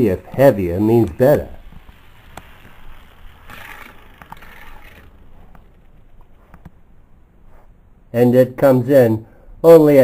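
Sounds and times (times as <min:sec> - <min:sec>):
toy car rolling on plastic track: 0:01.0 - 0:06.3.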